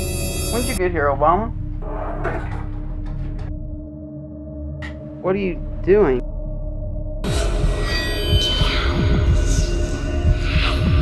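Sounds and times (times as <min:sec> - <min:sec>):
low throbbing pulses: 0:00.6 - 0:11.0.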